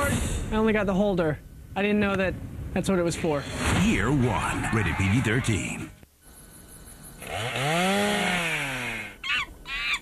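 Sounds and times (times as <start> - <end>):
chainsaw revving: 7.2 - 9.2.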